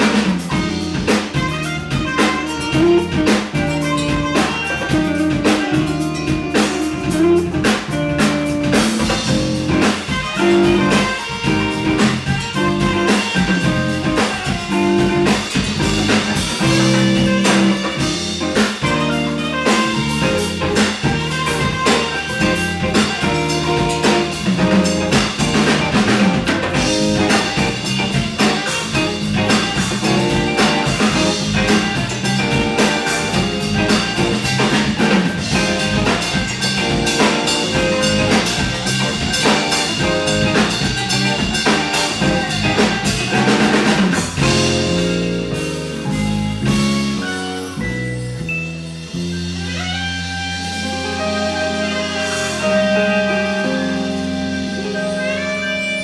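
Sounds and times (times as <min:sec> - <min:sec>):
bass: 0:00.0 - 0:56.0
drum kit: 0:00.0 - 0:56.0
guitar: 0:00.0 - 0:56.0.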